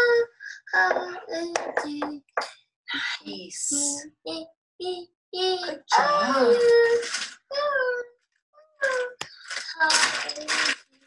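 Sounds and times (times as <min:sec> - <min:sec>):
child's high-pitched vocal sounds: 0:00.0 - 0:10.9.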